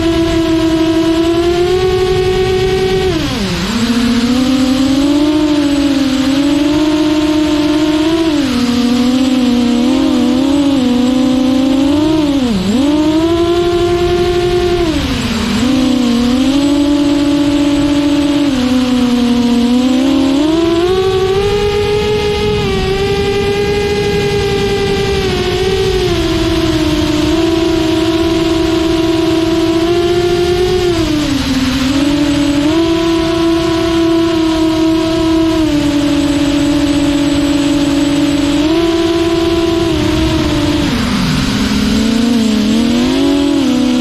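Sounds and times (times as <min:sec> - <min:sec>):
quadcopter motors whining: 0:00.0 - 0:44.0.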